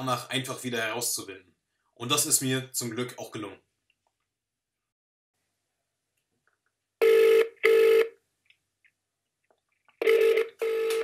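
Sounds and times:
phone ringback tone beeps: 0:07.0 - 0:08.1, 0:10.0 - 0:11.0.

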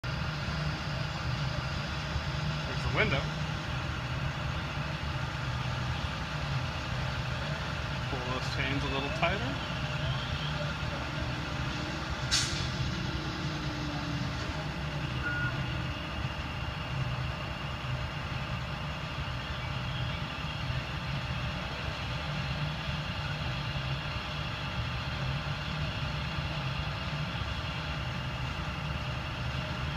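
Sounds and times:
truck engine idling: 0:00.0 - 0:29.9.

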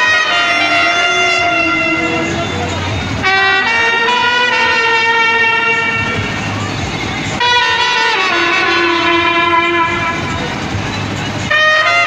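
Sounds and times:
brass band sustained chords: 0:00.0 - 0:12.0.

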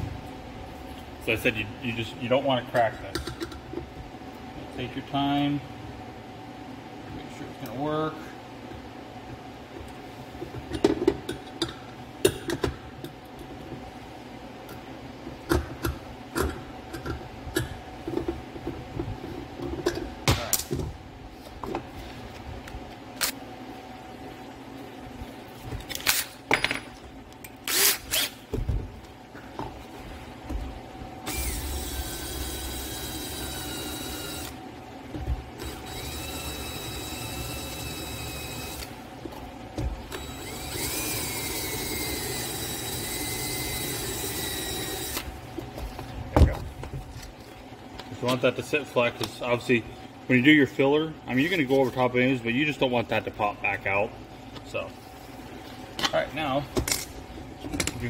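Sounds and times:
cordless drill motor whine: 0:31.3 - 0:34.6, 0:35.6 - 0:38.9, 0:40.1 - 0:45.3.

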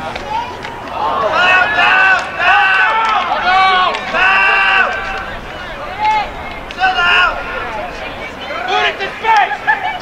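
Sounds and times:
people shouting calls: 0:00.2 - 0:10.0.

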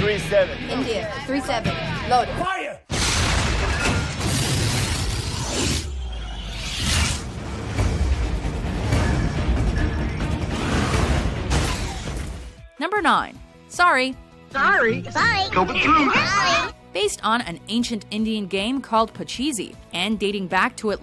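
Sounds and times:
crashing debris: 0:02.9 - 0:04.9
explosions: 0:02.9 - 0:05.9
film score music: 0:04.2 - 0:20.1.

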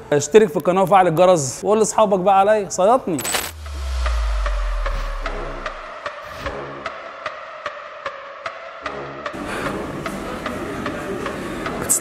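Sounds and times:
metallic swish: 0:03.2 - 0:07.2
deep bass boom: 0:03.3 - 0:07.2.

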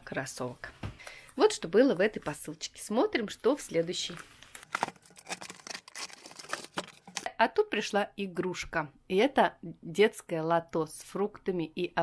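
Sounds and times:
plastic wrapping crinkling: 0:03.4 - 0:07.3.

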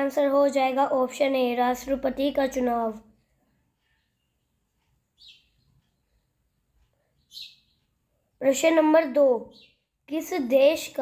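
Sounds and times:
high-pitched bird chirp: 0:05.2 - 0:06.3, 0:07.1 - 0:10.0.

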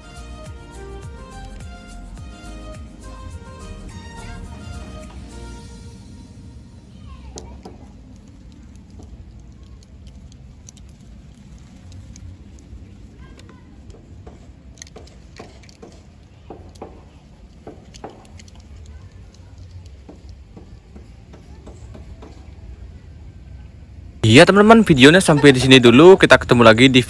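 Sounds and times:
faint clicks and ticks: 0:07.3 - 0:22.5.

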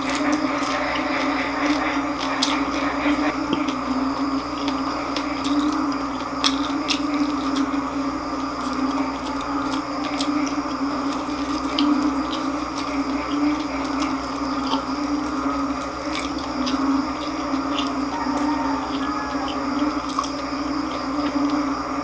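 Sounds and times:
mouth clicks: 0:00.0 - 0:21.7
person chewing crispy food: 0:00.0 - 0:22.0
steady low hum: 0:00.0 - 0:22.0.

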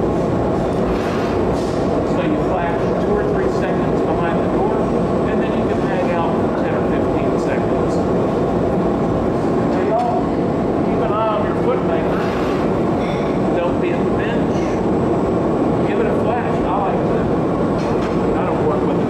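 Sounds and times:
furnace ventilation roar: 0:00.0 - 0:19.0
gas burners roaring: 0:00.0 - 0:19.0.

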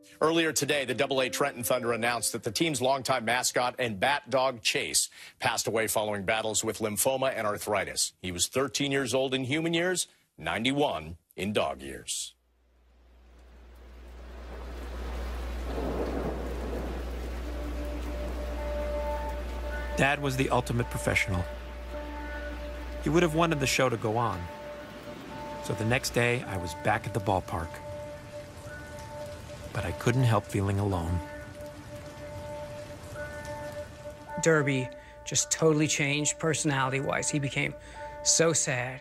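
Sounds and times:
rain falling: 0:12.7 - 0:39.0
thunder rumbling: 0:13.2 - 0:38.3
faint held music notes: 0:17.1 - 0:39.0.

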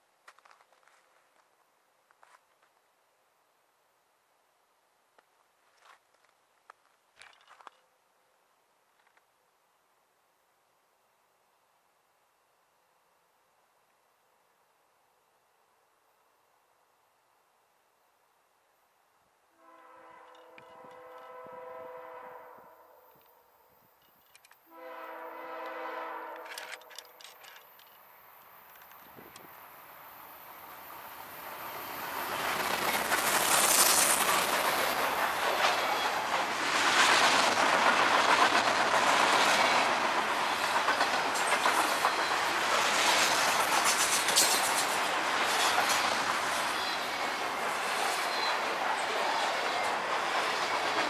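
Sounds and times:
locomotive air horn blasts: 0:19.5 - 0:23.6, 0:24.7 - 0:26.7
freight train rolling past: 0:19.6 - 0:51.0
wheels clacking over rail joints: 0:26.3 - 0:29.6, 0:31.7 - 0:51.0.

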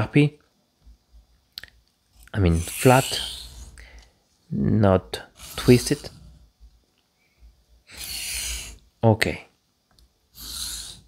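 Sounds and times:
razor scraping on sharpening plate: 0:02.4 - 0:03.7.

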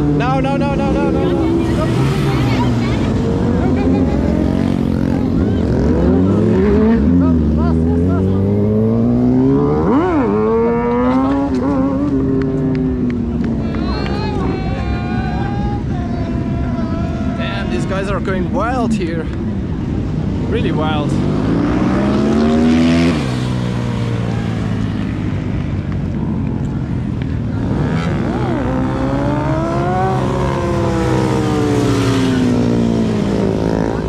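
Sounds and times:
motorcycles revving past: 0:00.0 - 0:14.8, 0:18.8 - 0:34.0.

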